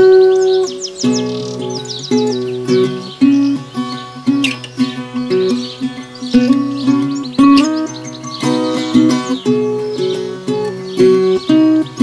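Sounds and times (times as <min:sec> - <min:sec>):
bird chirping: 0:00.0 - 0:12.0
fingerpicked guitar: 0:00.0 - 0:12.0.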